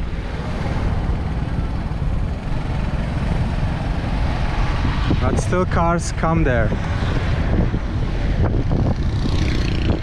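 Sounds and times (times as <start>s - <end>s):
wind on microphone: 3.3s - 5.9s, 6.5s - 10.0s
motorcycle engine running: 8.5s - 10.0s.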